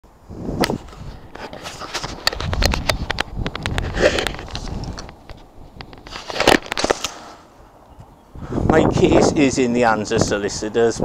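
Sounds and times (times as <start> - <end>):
camera handling rustling: 0.6 - 8.0.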